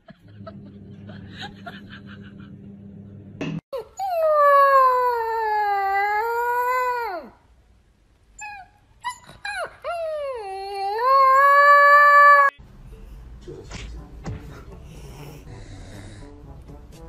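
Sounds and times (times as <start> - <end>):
puppy howling: 3.8 - 7.4, 8.4 - 12.5.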